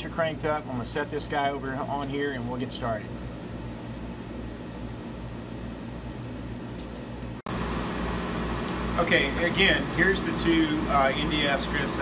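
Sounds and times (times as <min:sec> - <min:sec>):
laser engraver fan and motor hum: 0:00.0 - 0:12.0.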